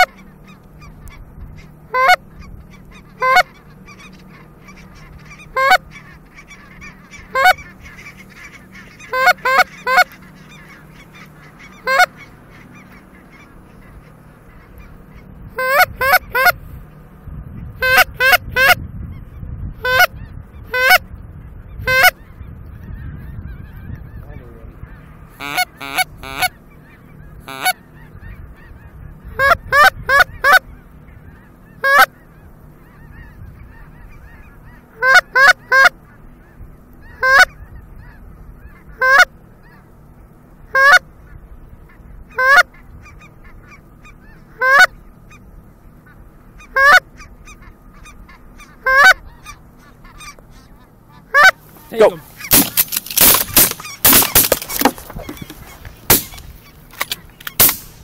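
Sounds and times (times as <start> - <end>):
goose honking: 0.0 - 16.7, 17.8 - 18.8, 19.8 - 21.1, 21.7 - 57.8.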